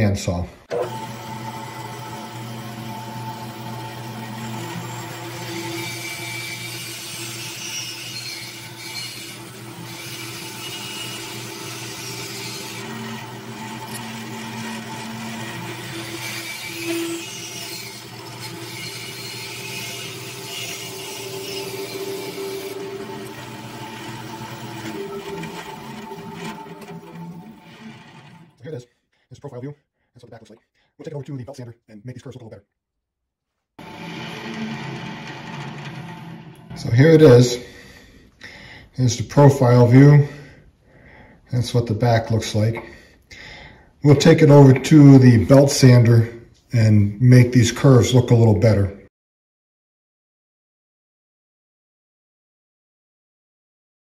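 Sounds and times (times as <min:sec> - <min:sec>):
bandsaw cutting wood: 0:00.7 - 0:28.8, 0:33.8 - 0:38.0.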